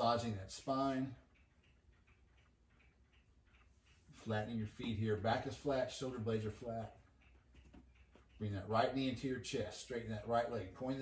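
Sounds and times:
faint regular ticking: 0.0s - 11.0s.

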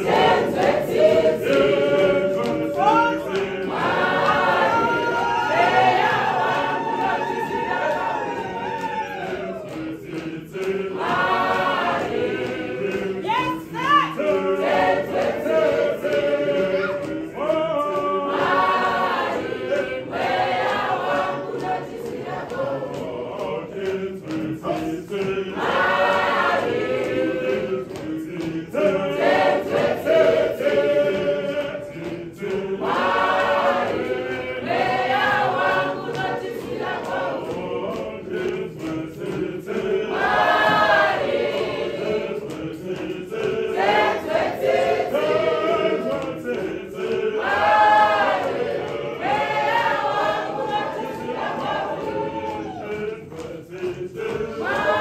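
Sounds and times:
church choir singing a hymn: 0.0s - 55.0s.

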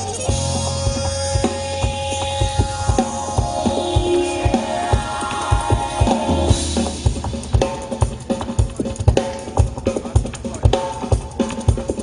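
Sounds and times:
low bass: 0.0s - 8.3s
drum kit keeping time: 0.0s - 12.0s
live jazz band playing: 0.0s - 12.0s
held pitched note: 0.3s - 8.0s.

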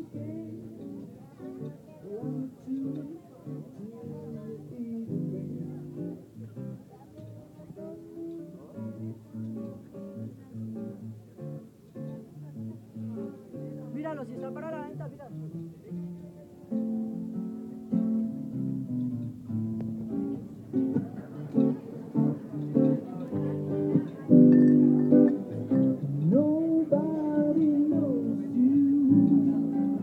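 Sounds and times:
plucked guitar music: 0.0s - 30.0s.

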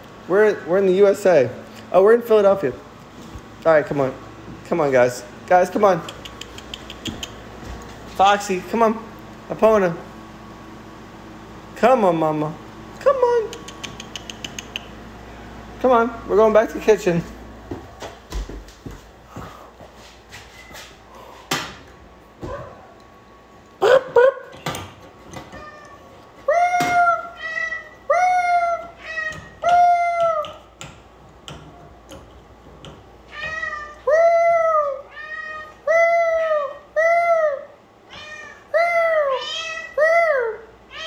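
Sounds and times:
cat meowing: 25.5s - 30.5s, 33.3s - 36.8s, 38.1s - 40.1s.

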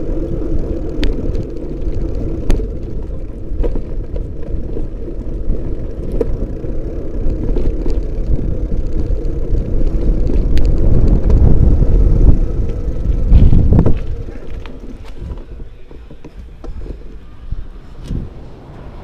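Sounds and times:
road rumble and rattles: 0.0s - 19.0s
wind buffeting microphone: 0.0s - 19.0s.

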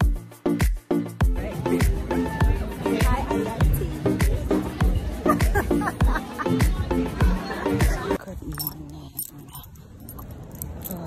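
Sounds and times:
light metallic jingling: 8.2s - 11.0s.

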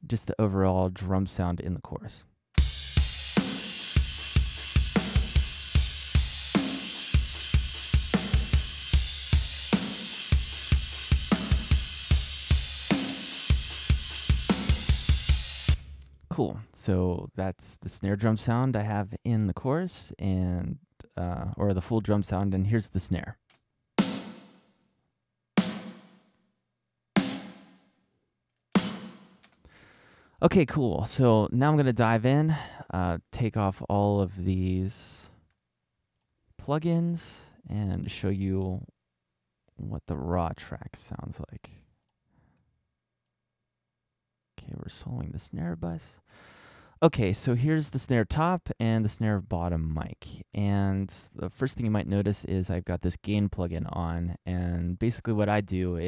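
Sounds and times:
snare drum hits: 27.2s - 27.8s, 28.8s - 29.4s.

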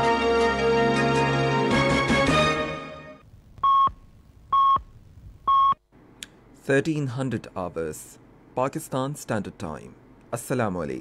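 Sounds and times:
theme music: 0.0s - 3.2s.

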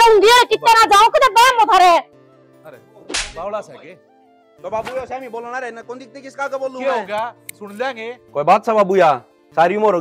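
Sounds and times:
soft background music: 0.0s - 10.0s
sharp swish hit: 3.1s - 3.4s.

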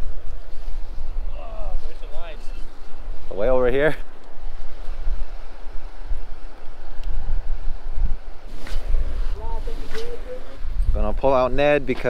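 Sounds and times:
wind buffeting microphone: 0.0s - 12.0s
brief rustle: 8.5s - 10.4s.

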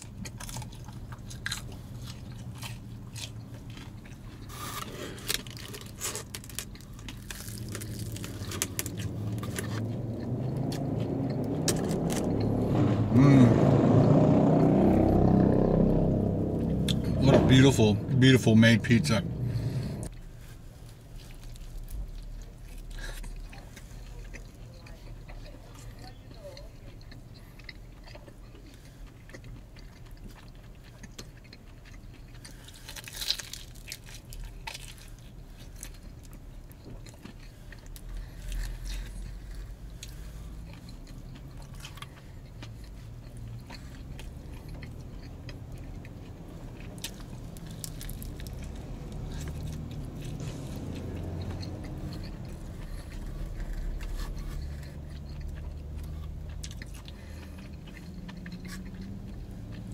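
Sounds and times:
man chewing food: 0.0s - 12.9s, 14.7s - 17.2s, 18.2s - 59.9s.

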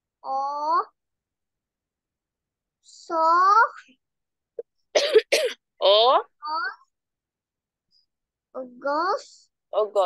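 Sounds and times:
woman coughing: 4.9s - 5.7s.

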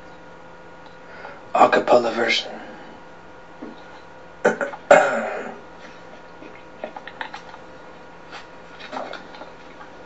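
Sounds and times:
person clearing throat: 4.4s - 5.7s.

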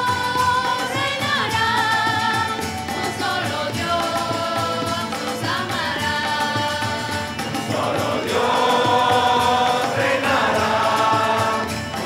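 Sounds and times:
guitar: 0.0s - 12.0s
mixed choir singing: 0.0s - 12.0s.

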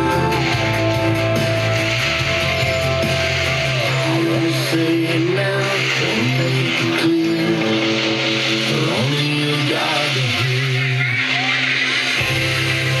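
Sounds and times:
country music on car radio: 0.0s - 13.0s.

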